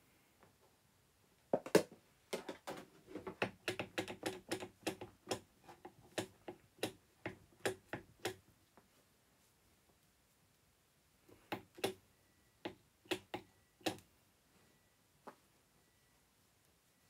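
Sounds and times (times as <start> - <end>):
fingers typing on keyboard: 3.3 - 8.4, 11.4 - 12.0, 13.1 - 14.0.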